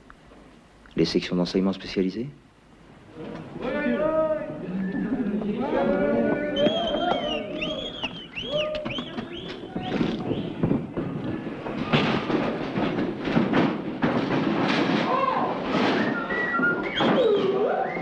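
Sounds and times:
voices calling out: 3.0 - 12.0, 15.0 - 18.0
short whistles rising and falling: 6.6 - 10.6, 15.9 - 18.0
clatter of knocks and bangs: 8.8 - 18.0.

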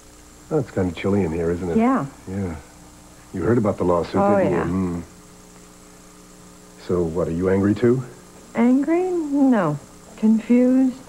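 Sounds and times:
electrical hum: 0.0 - 11.0
faint hiss: 0.0 - 11.0
person speaking: 3.4 - 5.1.

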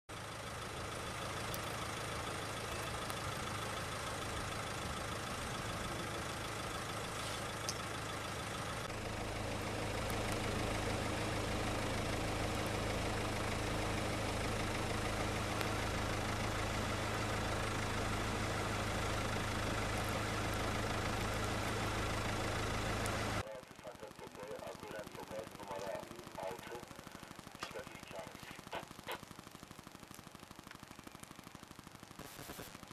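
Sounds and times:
vehicle engine idling: 0.1 - 32.2.

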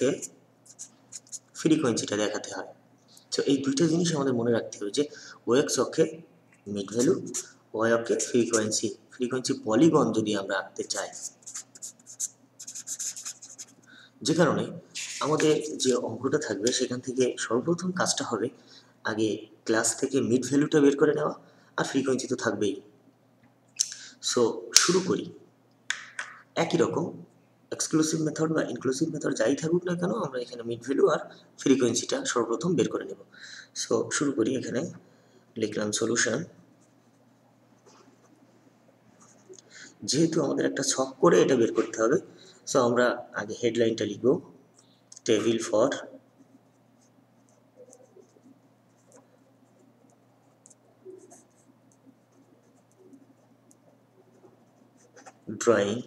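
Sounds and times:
man speaking: 0.0 - 12.2, 14.2 - 22.9, 24.2 - 25.4, 26.6 - 35.0, 40.0 - 44.6, 45.2 - 46.2, 55.2 - 56.0
pen scratching on paper: 11.1 - 13.8, 46.4 - 55.5.

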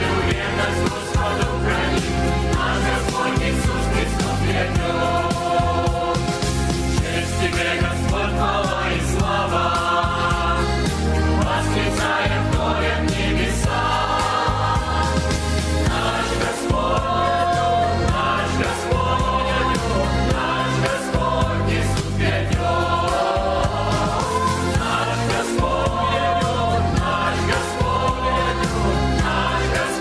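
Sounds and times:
choir singing: 0.0 - 30.0
steady bass: 0.0 - 30.0.

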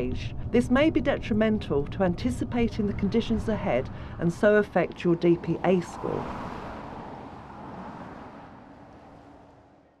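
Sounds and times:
road traffic noise: 0.0 - 10.0.

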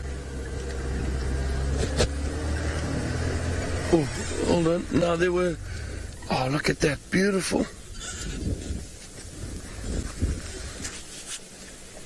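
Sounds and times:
vehicle engine running at low revs: 0.0 - 6.8.

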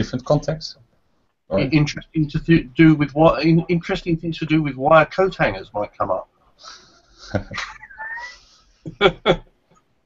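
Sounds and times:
man laughing: 7.2 - 9.5.

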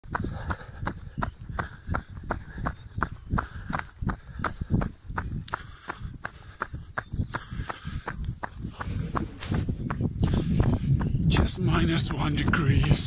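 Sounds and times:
running footsteps on hard ground: 0.0 - 13.0.

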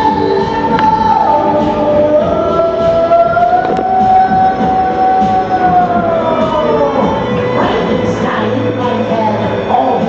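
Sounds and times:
backing music: 0.0 - 10.0.

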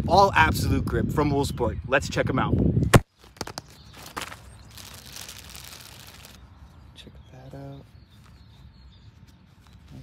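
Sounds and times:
plastic pouch crinkling: 4.0 - 6.4.

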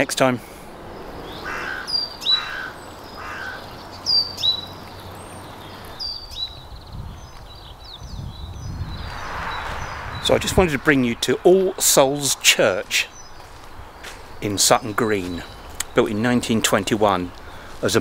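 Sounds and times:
songbirds whistling: 0.6 - 11.1, 13.0 - 16.2
crow cawing: 1.2 - 4.5
low rumble: 8.0 - 13.3.

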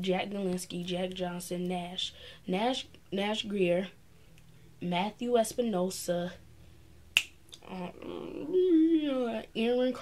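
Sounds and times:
finger snap: 7.1 - 7.6.

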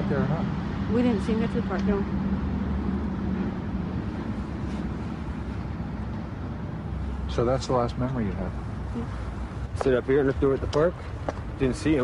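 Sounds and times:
outdoor low rumble: 0.0 - 12.0.

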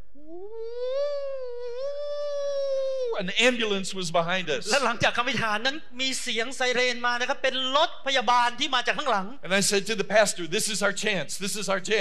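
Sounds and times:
man imitating a siren: 0.3 - 3.2.

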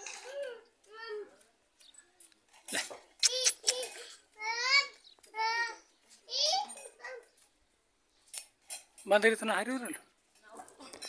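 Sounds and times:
sharp clicks: 3.2 - 3.8.

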